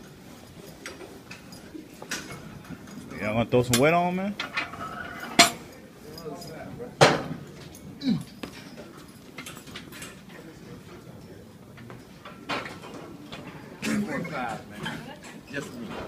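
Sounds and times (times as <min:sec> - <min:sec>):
weight plates and barbell clanking: 0:03.8 - 0:05.7
low voices: 0:07.9 - 0:08.5.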